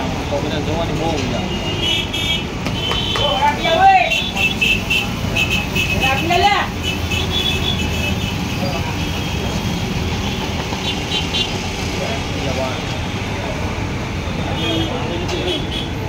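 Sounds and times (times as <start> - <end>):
low street rumble: 0.0 - 16.0.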